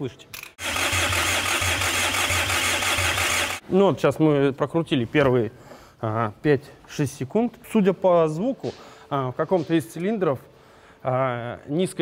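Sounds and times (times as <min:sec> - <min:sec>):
engine cranking on starter: 0:00.6 - 0:03.6.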